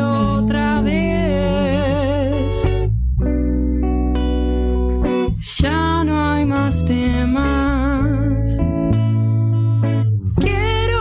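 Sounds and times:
person singing with vibrato: 0.0s - 2.9s, 4.8s - 8.7s, 10.4s - 11.0s
guitar accompaniment: 0.0s - 11.0s.

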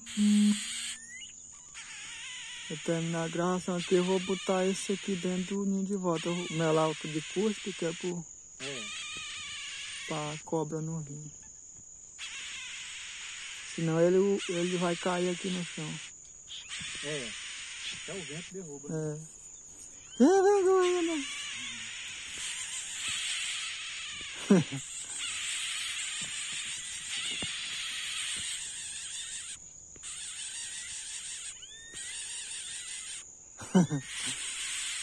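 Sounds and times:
bird nestlings peeping: 0.0s - 33.3s
high-pitched insect buzzing: 0.0s - 35.0s
man laughing: 20.2s - 21.2s, 24.4s - 24.8s, 33.6s - 34.4s.

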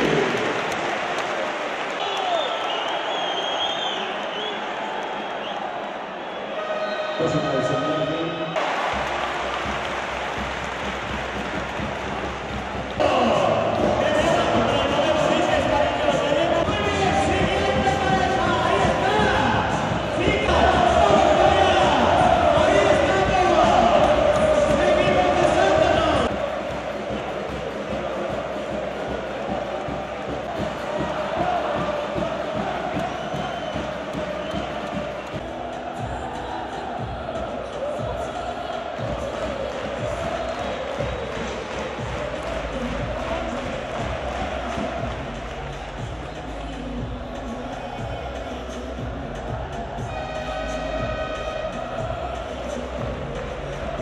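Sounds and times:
arena crowd chanting and cheering: 0.0s - 54.0s
music: 6.8s - 54.0s
distant crowd chant: 8.6s - 54.0s.

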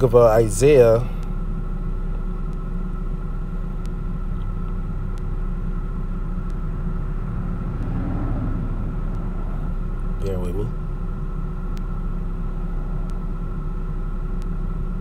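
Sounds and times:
faint hum: 0.0s - 15.0s
low engine rumble: 0.0s - 15.0s
faint clicks: 13.0s - 13.2s.

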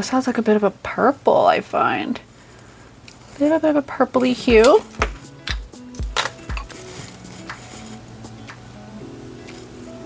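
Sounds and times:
soft background music: 3.6s - 10.0s.

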